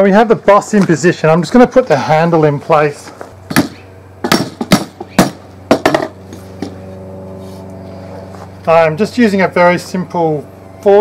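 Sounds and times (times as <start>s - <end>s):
objects knocking on wood: 3.5s - 6.8s.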